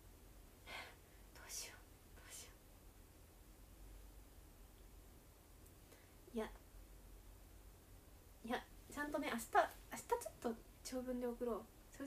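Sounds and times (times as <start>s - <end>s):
soft whispering: 0.6s - 2.7s.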